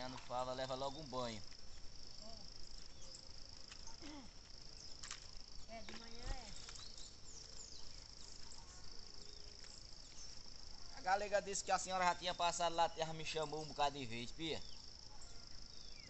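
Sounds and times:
insects trilling: 0:00.0 - 0:16.0.

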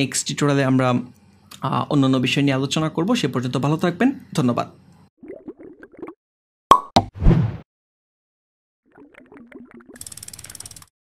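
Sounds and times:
ratchet-like clicking: 0:10.0 - 0:10.9.

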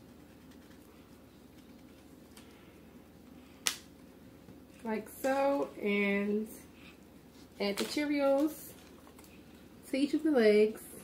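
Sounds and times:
woman speaking: 0:04.8 - 0:06.7, 0:07.6 - 0:08.8, 0:09.8 - 0:11.0.

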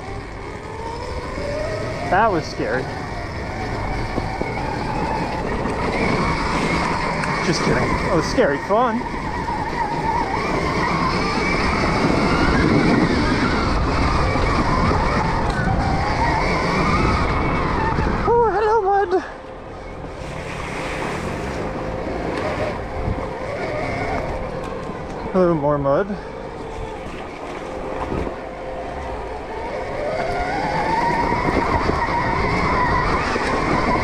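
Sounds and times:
electric motor whine: 0:00.0 - 0:18.5, 0:19.2 - 0:34.0
rush of tyre and wind noise: 0:00.0 - 0:34.0
person exclaiming: 0:18.2 - 0:19.4.

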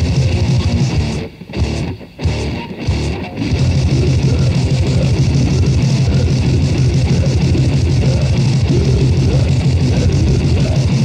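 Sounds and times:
fast drum beat: 0:00.0 - 0:01.2, 0:02.3 - 0:11.0
bass guitar: 0:00.0 - 0:11.0
distorted electric guitar: 0:00.0 - 0:11.0.

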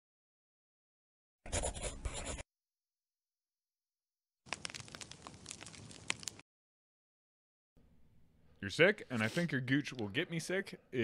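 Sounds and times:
crackling crinkling noise: 0:04.5 - 0:06.4.

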